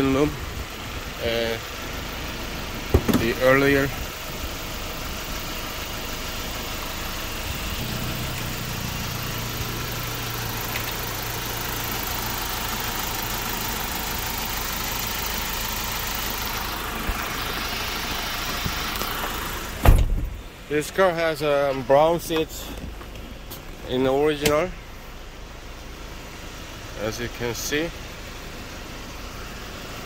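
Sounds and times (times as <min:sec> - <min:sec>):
truck engine idling: 0:00.0 - 0:30.0
sharp thump: 0:19.8 - 0:20.4.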